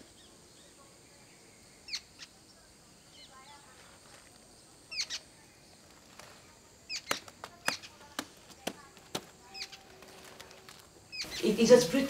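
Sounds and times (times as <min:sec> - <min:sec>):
bird chirps: 0:00.0 - 0:05.8, 0:06.8 - 0:08.2, 0:09.4 - 0:12.0.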